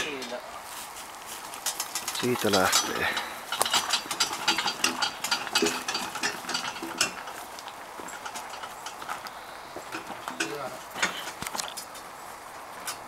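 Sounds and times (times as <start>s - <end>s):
log dolly wheels crunching on gravel: 0.0s - 13.0s
footsteps on gravel: 0.6s - 4.2s.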